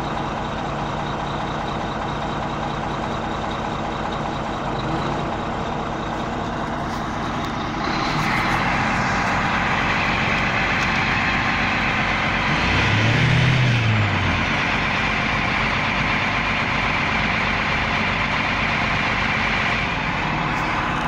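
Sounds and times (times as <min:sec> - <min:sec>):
diesel engine idling: 0:00.0 - 0:21.0.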